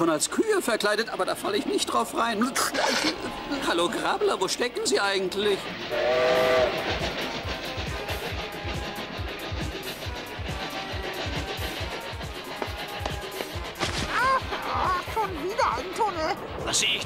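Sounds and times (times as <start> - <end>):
background music: 0.0 - 17.0
rhythmic locomotive chugging: 0.0 - 17.0
steam whistle blast: 5.9 - 9.6.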